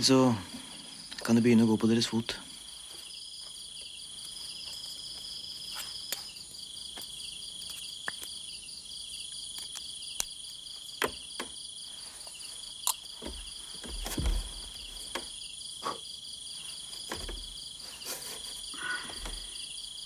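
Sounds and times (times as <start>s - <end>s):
insects chirping: 0.0s - 20.0s
low thump: 13.2s - 14.7s.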